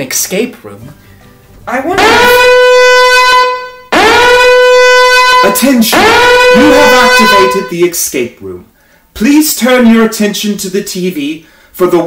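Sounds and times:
alarm horn blast: 1.7 - 7.9.

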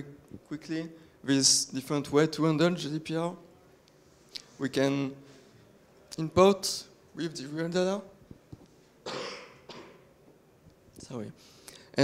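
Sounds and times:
man coughing: 9.0 - 10.1.

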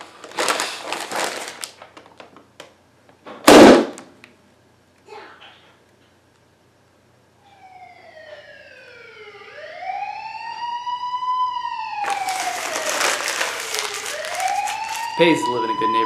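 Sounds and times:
emergency vehicle siren wailing: 7.4 - 16.0
loud crackling noise: 12.0 - 15.3.

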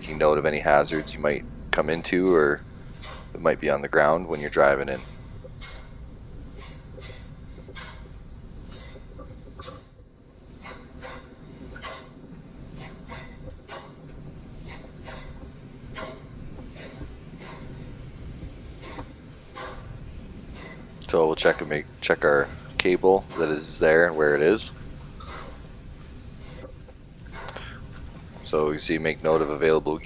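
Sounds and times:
steady low rumble: 0.0 - 30.0.

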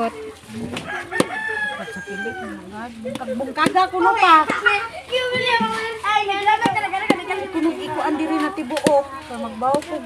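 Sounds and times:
rooster crowing: 0.6 - 2.8.

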